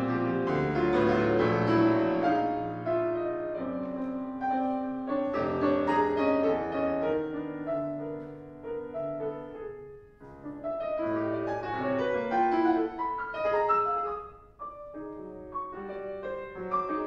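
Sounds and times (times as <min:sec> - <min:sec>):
solo piano playing: 0:00.0 - 0:17.0.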